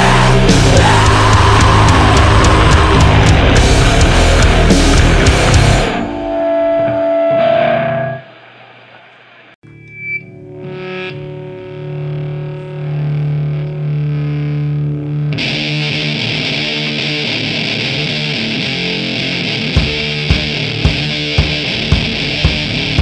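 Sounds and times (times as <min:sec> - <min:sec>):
drums and cymbals: 0:00.0 - 0:06.0, 0:19.8 - 0:23.0
distorted electric guitar: 0:00.0 - 0:23.0.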